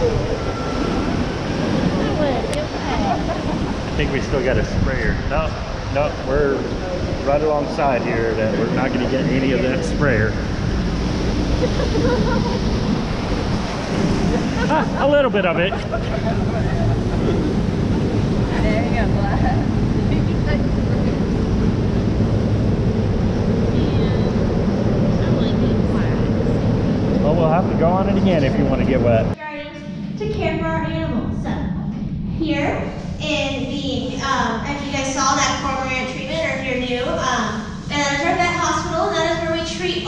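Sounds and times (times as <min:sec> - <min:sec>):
voices of people: 0:00.0 - 0:10.6, 0:11.2 - 0:40.0
rushing churning water: 0:00.0 - 0:29.4
wind on microphone: 0:00.0 - 0:40.0.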